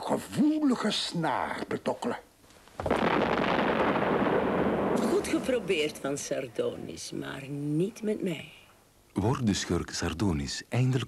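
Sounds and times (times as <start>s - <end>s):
explosion rumble: 2.8s - 6.3s.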